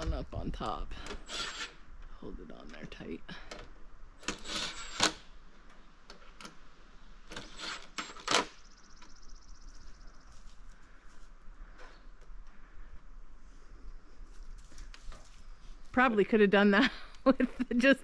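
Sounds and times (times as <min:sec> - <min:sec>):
hand tool clicking and scraping: 0:04.2 - 0:05.2.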